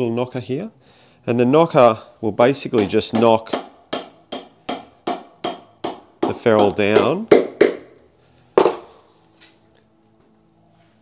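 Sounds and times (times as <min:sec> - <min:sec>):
hammer tapping metal: 0:02.4 - 0:08.0.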